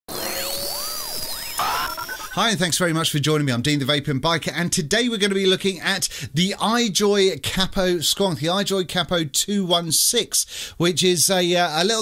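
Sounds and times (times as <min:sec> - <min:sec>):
synthetic tones sweeping: 0:00.1 - 0:02.4.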